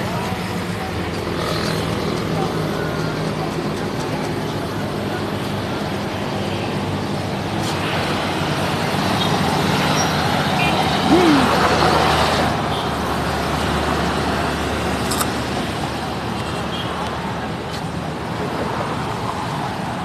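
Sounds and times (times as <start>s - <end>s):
road traffic: 0.0s - 20.0s.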